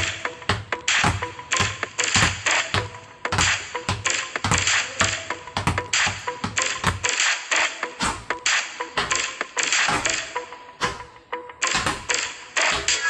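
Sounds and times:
basketballs bouncing on concrete: 0:00.0 - 0:07.3, 0:07.9 - 0:13.0
background music: 0:00.0 - 0:13.0.

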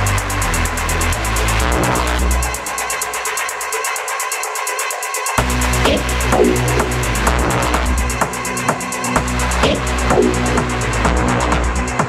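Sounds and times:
fast ticking high percussion: 0:00.0 - 0:12.0
mid-range synth: 0:00.0 - 0:12.0.

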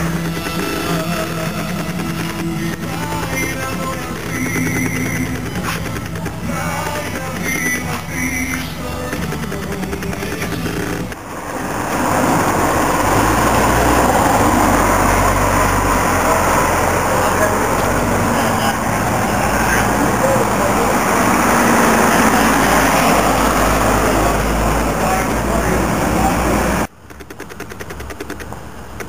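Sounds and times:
background music: 0:00.0 - 0:26.9
vehicle and wind noise: 0:00.0 - 0:29.0.

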